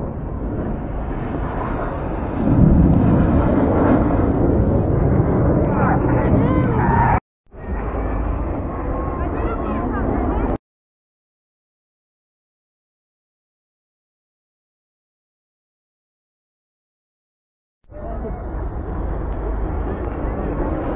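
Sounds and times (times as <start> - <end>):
jet roar: 0.0 - 10.6, 17.9 - 20.9
crowd voices: 4.7 - 10.6, 17.9 - 20.9.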